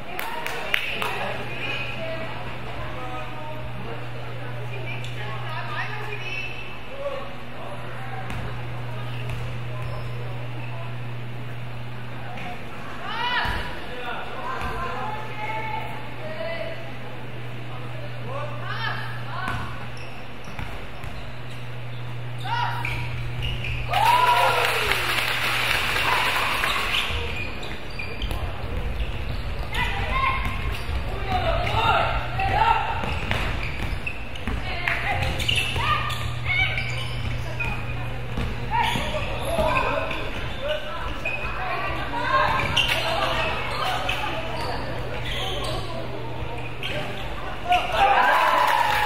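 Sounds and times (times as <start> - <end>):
steady low hum: 0.0 - 47.7.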